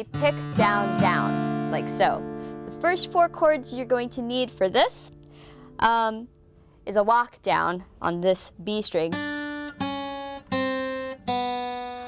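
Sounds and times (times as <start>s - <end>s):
acoustic guitar chords: 0.0s - 6.8s, 9.1s - 12.0s.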